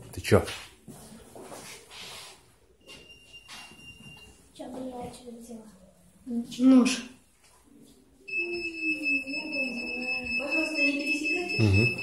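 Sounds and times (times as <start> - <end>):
high-pitched electronic alarm tone: 8.3 - 12.0.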